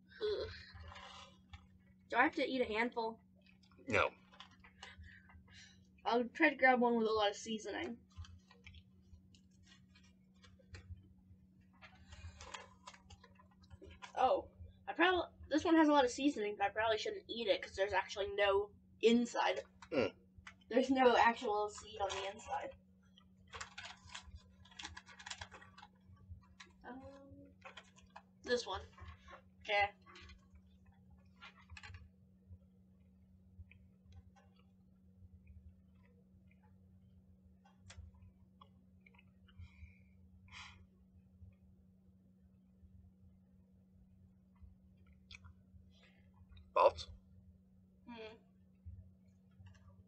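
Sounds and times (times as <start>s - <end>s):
steady low hum: 0.0s - 50.0s
snack bag crinkling: 0.5s - 2.1s, 3.3s - 5.6s, 8.0s - 14.2s, 21.3s - 32.1s.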